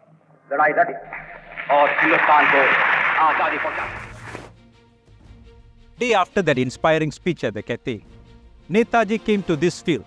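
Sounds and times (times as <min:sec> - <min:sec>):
background noise: 0:00.0 - 0:04.5
man's speech on old recording: 0:00.5 - 0:04.1, 0:08.7 - 0:10.0.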